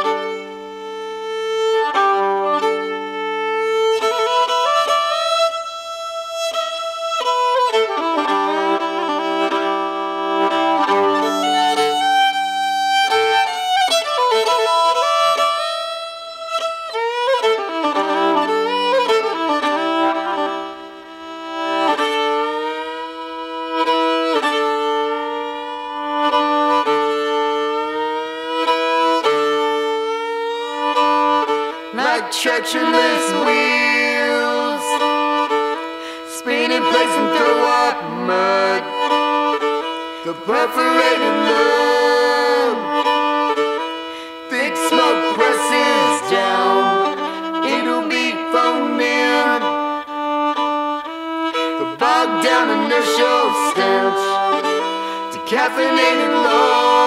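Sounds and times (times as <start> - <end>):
bowed fiddle melody: 0.0 - 57.0.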